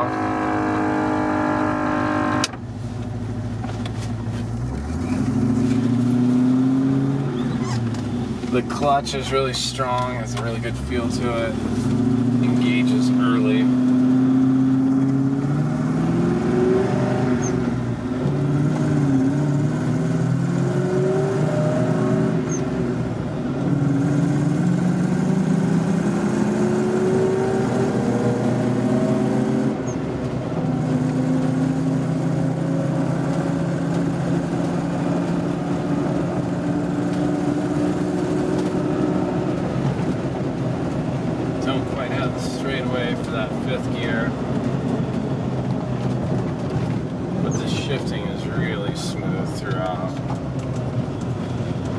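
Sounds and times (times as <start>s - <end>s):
engine pulling through gears: 3.7s - 51.9s.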